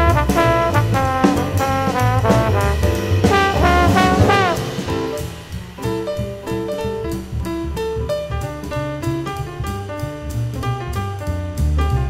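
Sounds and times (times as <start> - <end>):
cymbals: 0.0 - 9.4
jazz trombone playing: 0.0 - 10.6
bass: 0.0 - 12.0.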